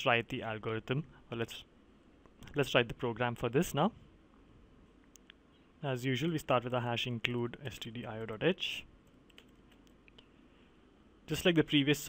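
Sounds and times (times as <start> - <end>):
faint keyboard typing: 7.6 - 10.3.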